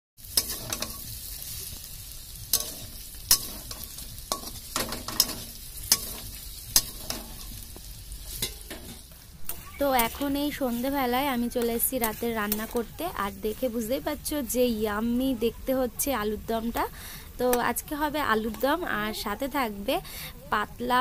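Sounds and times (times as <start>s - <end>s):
metal spatula scraping pan: 0.2s - 1.8s, 2.4s - 13.0s
potatoes sizzling in oil: 0.2s - 21.0s.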